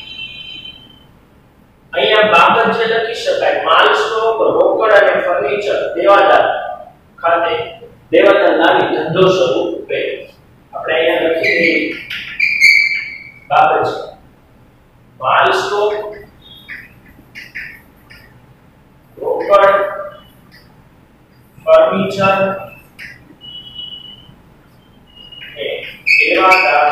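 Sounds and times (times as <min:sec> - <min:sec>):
man's voice: 0:02.0 - 0:12.0, 0:19.2 - 0:20.2, 0:21.6 - 0:22.8, 0:25.6 - 0:26.9
chalk squeaking on blackboard: 0:11.2 - 0:13.5, 0:25.1 - 0:26.9
chalk squeaking on a blackboard: 0:25.2 - 0:26.9.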